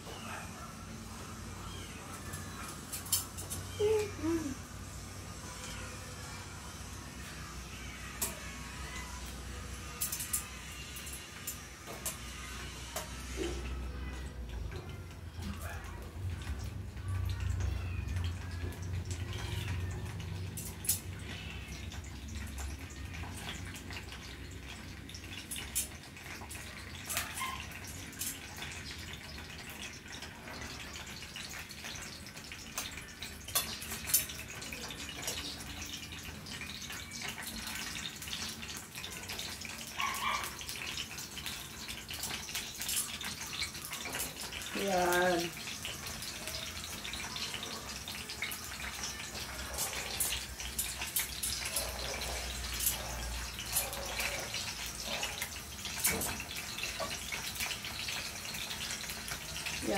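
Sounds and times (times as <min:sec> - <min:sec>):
dumplings sizzling in pan: 0:00.0 - 0:59.9
oil crackling and popping: 0:06.8 - 0:59.9.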